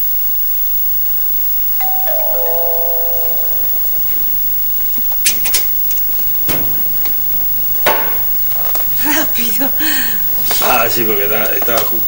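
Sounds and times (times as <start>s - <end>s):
steady hiss: 0.0s - 12.0s
doorbell chime: 1.8s - 5.9s.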